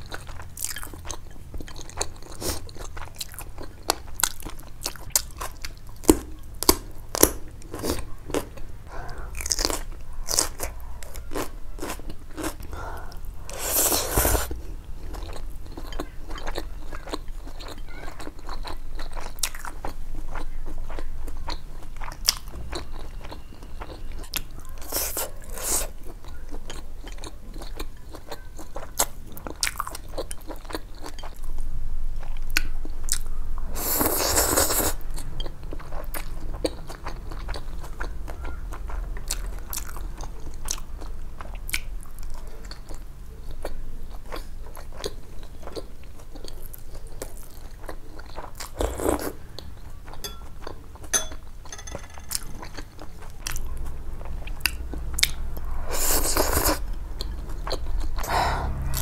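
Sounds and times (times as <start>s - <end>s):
crunching and chewing food: 0.0s - 59.0s.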